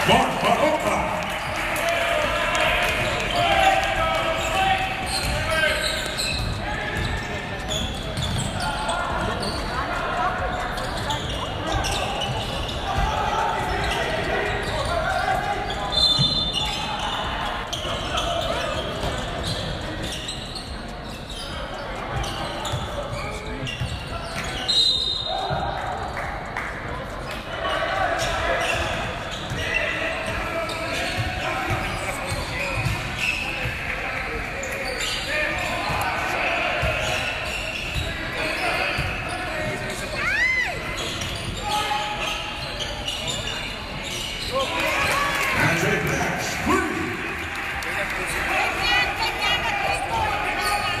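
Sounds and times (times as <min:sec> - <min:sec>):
crowd chatter in large hall: 0:00.0 - 0:51.0.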